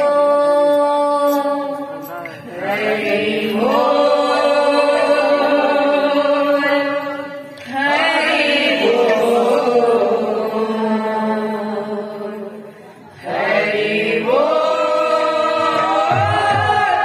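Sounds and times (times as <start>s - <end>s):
voices chanting together: 2.4s - 17.0s.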